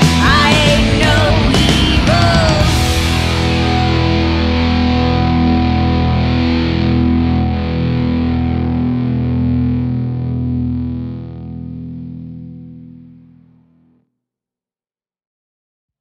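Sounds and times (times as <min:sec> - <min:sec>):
distorted electric guitar chord: 0:00.0 - 0:13.9.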